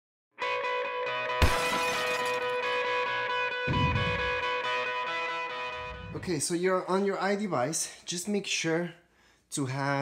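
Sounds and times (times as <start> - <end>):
loud shattering hit: 1.4 - 2.8.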